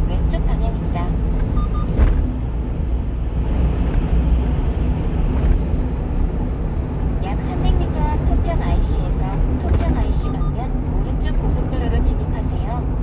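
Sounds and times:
truck driving: 0.0s - 13.0s.

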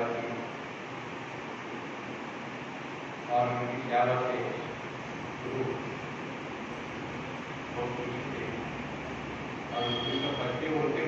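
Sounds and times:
man talking over microphone: 3.3s - 4.7s, 7.8s - 8.7s, 9.8s - 11.0s.

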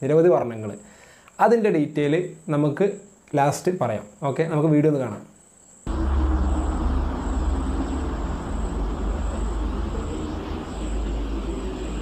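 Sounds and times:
faint high whine: 5.7s - 12.0s
low engine-like rumble: 5.9s - 12.0s.

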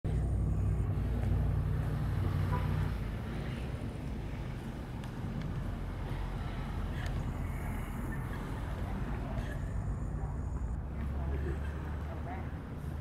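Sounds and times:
vehicle engine rumble: 0.0s - 13.0s.

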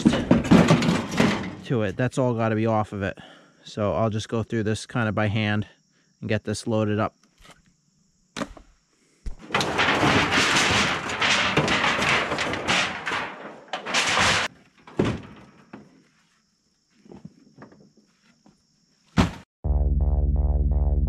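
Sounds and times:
metal sheets crinkling and rattling: 0.0s - 1.7s, 9.4s - 16.0s.

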